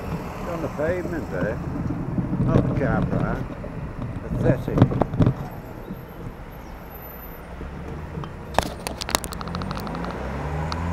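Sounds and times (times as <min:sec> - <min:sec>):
vehicle engine running: 0:00.0 - 0:10.9
sharp clicks: 0:07.9 - 0:10.9.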